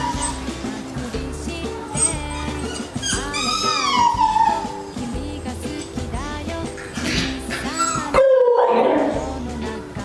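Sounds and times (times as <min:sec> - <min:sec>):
dog whining: 0:00.0 - 0:00.5, 0:01.9 - 0:05.0, 0:07.1 - 0:09.3
background music: 0:00.0 - 0:10.0.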